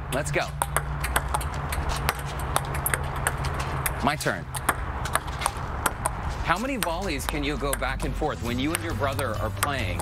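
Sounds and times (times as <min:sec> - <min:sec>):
ping-pong ball clicking on paddles: 0:00.2 - 0:10.0.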